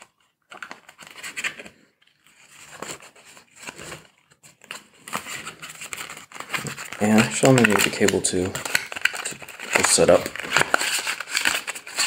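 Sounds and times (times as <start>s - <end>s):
cardboard packaging rustling: 0.0s - 12.0s.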